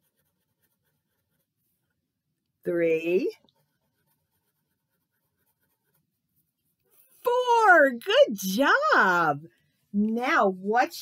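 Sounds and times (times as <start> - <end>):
crayon scratching on paper: 0.0 - 2.0, 2.8 - 7.5.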